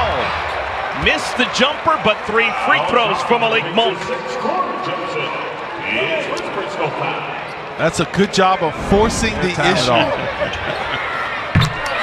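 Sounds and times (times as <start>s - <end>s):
arena crowd noise: 0.0s - 12.0s
indistinct voices: 8.6s - 12.0s.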